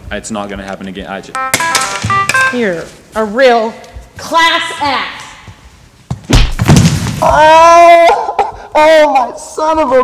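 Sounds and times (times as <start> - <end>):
person crying out in pain: 7.2 - 9.0.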